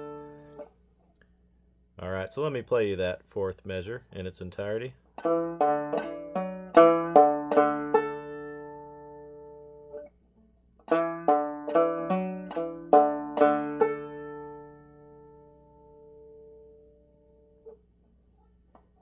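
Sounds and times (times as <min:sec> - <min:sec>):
banjo plucked melody: 0:00.0 - 0:00.8, 0:05.1 - 0:10.2, 0:10.8 - 0:17.8.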